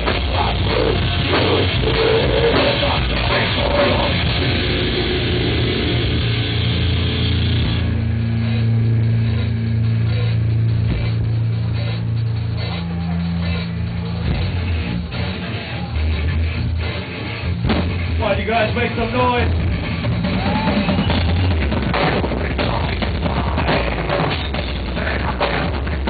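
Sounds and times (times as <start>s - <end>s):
heavy metal band playing live: 0.0s - 26.0s.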